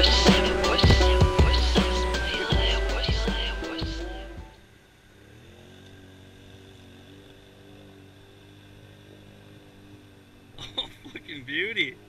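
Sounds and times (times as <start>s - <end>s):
man's voice: 0.0s - 4.6s
distant atv engine running: 0.0s - 12.0s.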